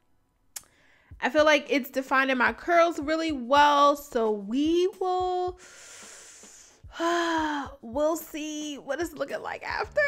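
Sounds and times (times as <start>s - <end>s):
woman breathing in: 0.7s - 1.2s, 5.6s - 7.5s.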